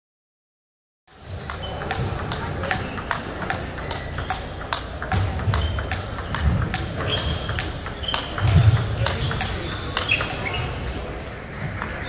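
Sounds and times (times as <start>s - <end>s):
table tennis balls clicking: 1.1s - 12.0s.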